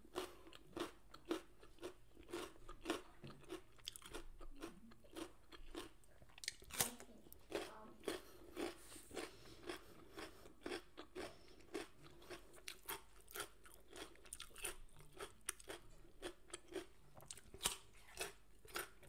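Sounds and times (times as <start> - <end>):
person chewing crunchy vegetable: 0.0 - 19.0.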